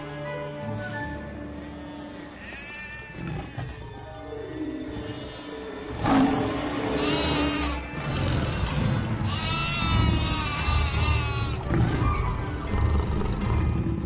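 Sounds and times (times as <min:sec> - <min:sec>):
background music: 0:00.0 - 0:14.0
cartoon lamb bleating: 0:07.0 - 0:11.7.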